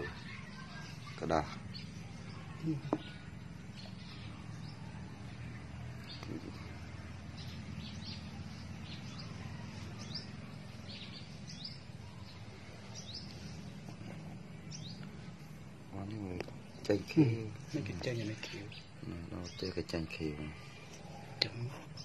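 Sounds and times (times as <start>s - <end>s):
low background hum: 0.0s - 22.0s
small birds chirping: 0.0s - 22.0s.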